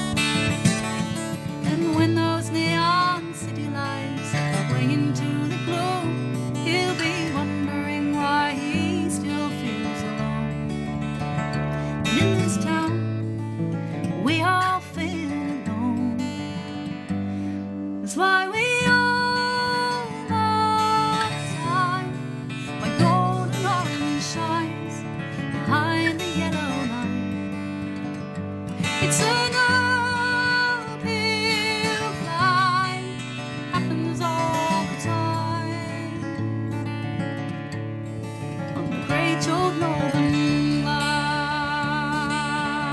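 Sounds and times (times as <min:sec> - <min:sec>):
woman singing: 0:00.0 - 0:37.5, 0:38.4 - 0:42.9
acoustic guitar strumming: 0:00.0 - 0:42.9.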